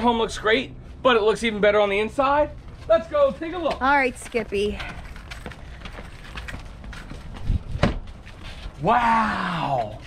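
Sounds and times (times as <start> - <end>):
footsteps on asphalt: 2.4 - 8.8.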